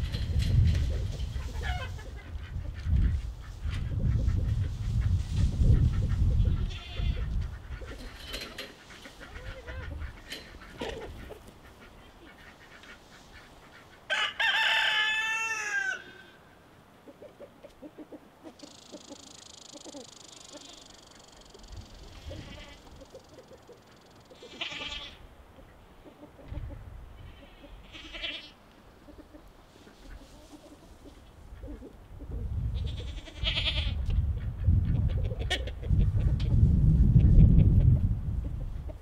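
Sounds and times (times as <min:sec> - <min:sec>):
farm animal calls: 0:00.9 - 0:16.4, 0:17.0 - 0:34.1.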